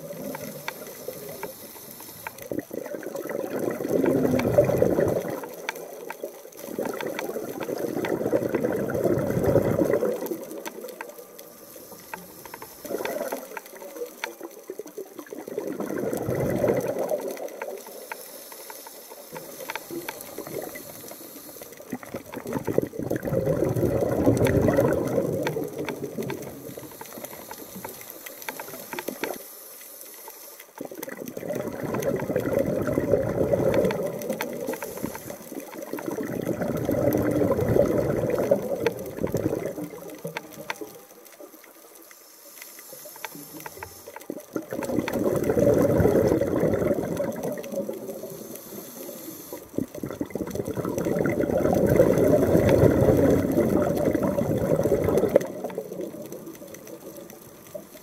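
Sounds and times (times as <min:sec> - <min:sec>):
water rushing and bubbling: 0:00.0 - 0:18.2, 0:19.1 - 0:29.4, 0:30.6 - 0:42.0, 0:43.0 - 0:58.0.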